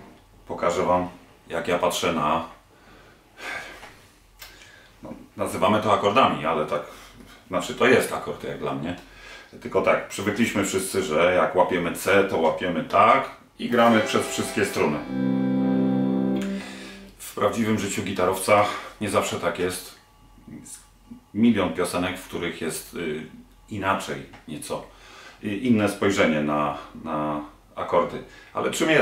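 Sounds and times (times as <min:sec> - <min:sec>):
electric guitar chord strummed: 0:13.8 - 0:17.2.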